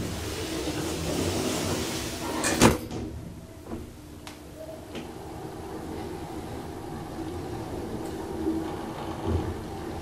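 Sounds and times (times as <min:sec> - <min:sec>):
elevator doors sliding shut: 0:00.0 - 0:03.2, 0:04.8 - 0:10.0.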